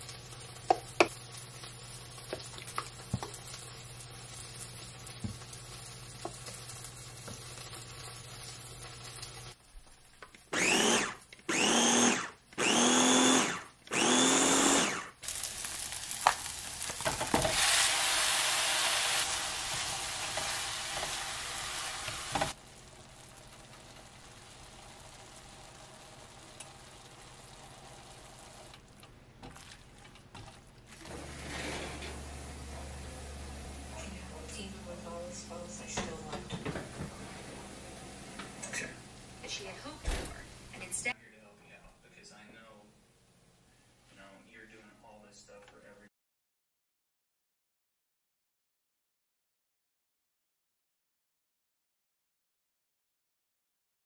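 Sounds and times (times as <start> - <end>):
meat sizzling in a frying pan: 0.0 - 12.1, 14.2 - 28.8
food chopper motor whine: 10.6 - 15.3.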